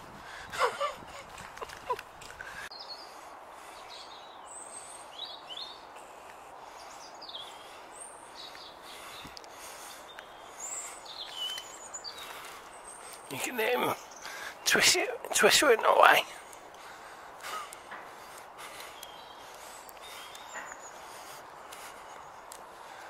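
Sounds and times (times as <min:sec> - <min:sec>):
steady outdoor hiss: 0:00.0 - 0:23.0
small birds chirping: 0:00.4 - 0:23.0.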